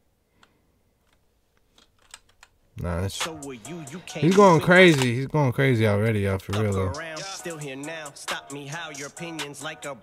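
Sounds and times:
man's voice: 2.8 - 10.0.

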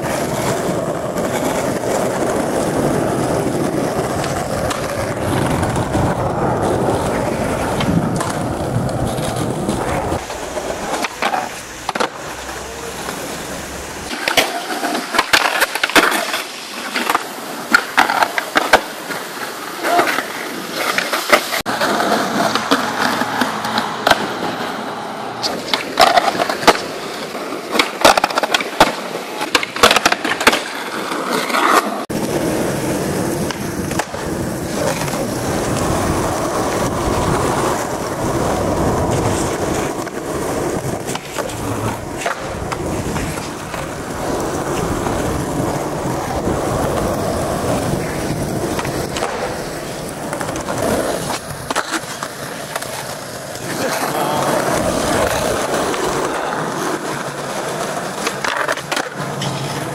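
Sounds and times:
skateboard clacks and scrapes: 0.0 - 59.9
skateboard wheels rolling: 0.0 - 59.9.

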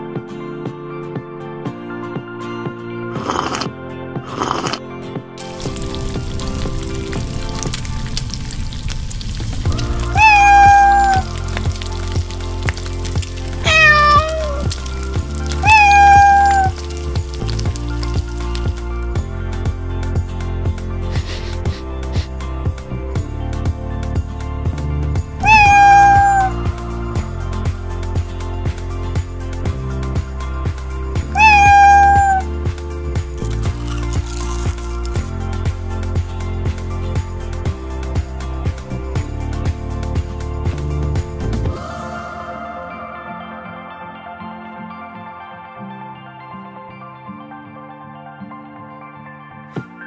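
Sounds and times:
background music: 0.0 - 50.0
cat meowing: 9.7 - 11.8, 13.6 - 16.8, 25.4 - 26.6, 31.3 - 32.5.

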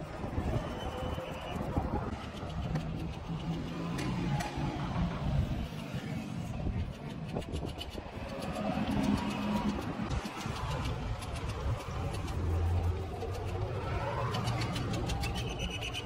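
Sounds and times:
vehicle engine rumble: 0.0 - 16.0
bird calls: 15.1 - 16.0.

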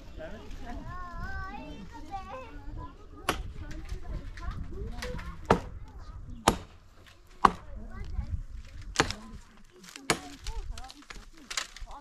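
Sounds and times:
chopping blows: 6.4 - 6.8.

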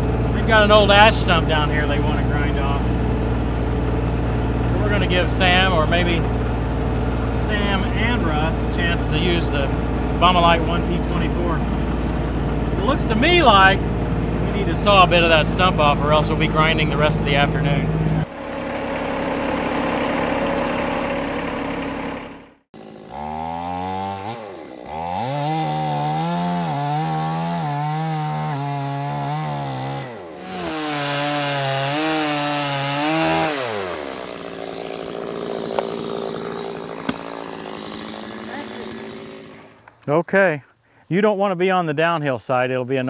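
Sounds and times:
steady engine-like noise: 0.0 - 22.6
chainsaw cutting wood: 18.2 - 40.0.

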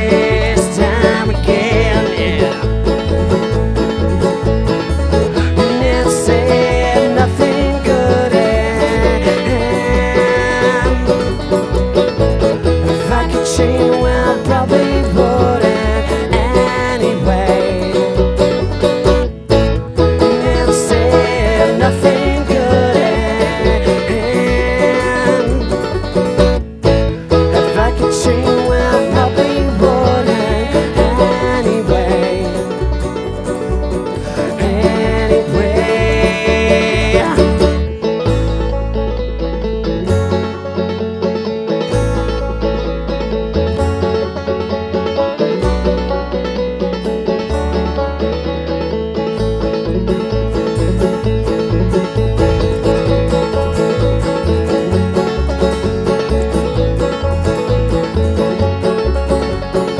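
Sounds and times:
woman singing: 0.0 - 2.8, 5.4 - 11.5, 12.9 - 18.3, 20.3 - 25.9, 27.5 - 32.8, 34.2 - 38.2
acoustic guitar: 0.0 - 59.9
upright bass: 0.0 - 59.9.

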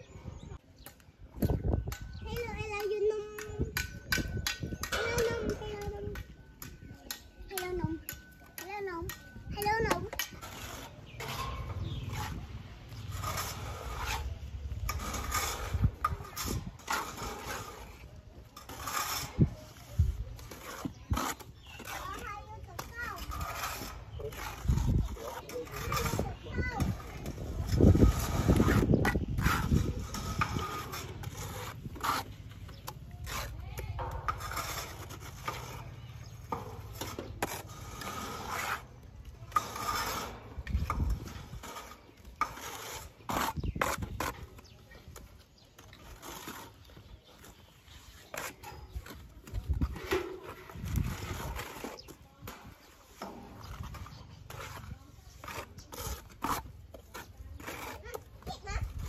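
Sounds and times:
trowels scraping cement: 0.0 - 59.0.

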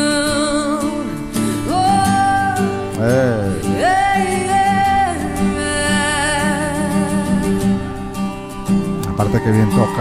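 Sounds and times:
woman singing wordless notes: 0.0 - 7.9
picked acoustic guitar: 0.0 - 10.0.

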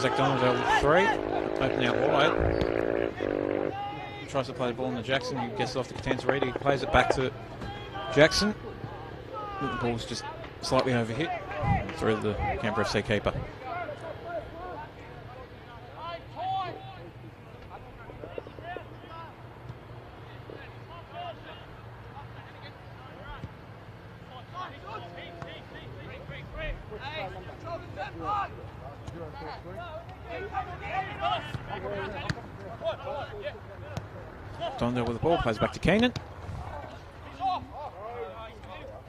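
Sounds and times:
distant people shouting: 0.0 - 4.5, 5.2 - 39.0.

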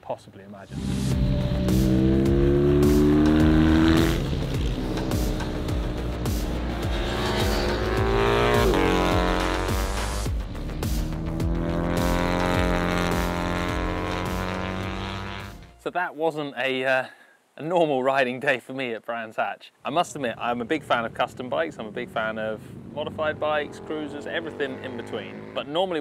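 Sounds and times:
motorcycle engines revving: 0.7 - 15.7, 20.6 - 26.0
motorcycle passing close by: 1.2 - 15.6, 21.8 - 25.7.

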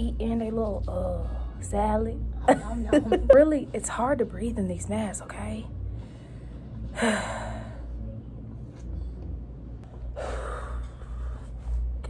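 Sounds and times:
woman breathing heavily: 5.8 - 8.1, 9.8 - 12.0.

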